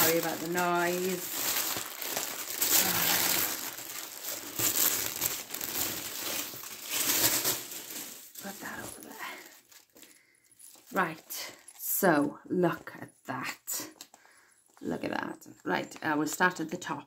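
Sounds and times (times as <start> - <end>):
plastic wrapping crackling: 0.0 - 11.9.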